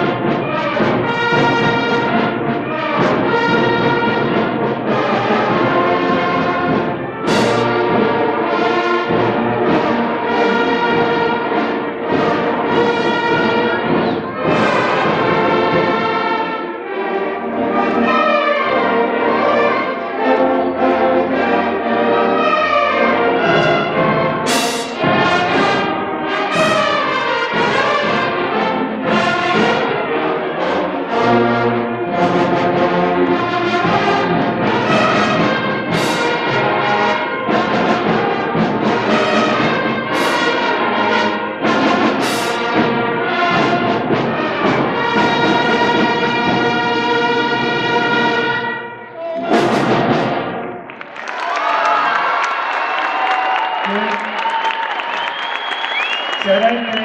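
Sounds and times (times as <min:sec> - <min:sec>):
band playing with brass: 0:00.0 - 0:51.0
sharp bright hits: 0:24.5 - 0:25.5, 0:40.1 - 0:40.8.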